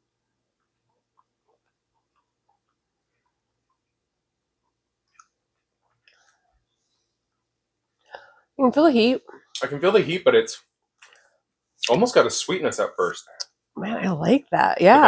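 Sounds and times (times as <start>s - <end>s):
faint chewing: 0.5s - 8.2s.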